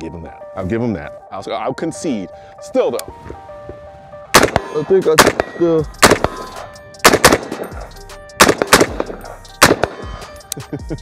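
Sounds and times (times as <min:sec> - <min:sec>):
rifle shots: 0:04.3 - 0:07.8, 0:08.4 - 0:10.2.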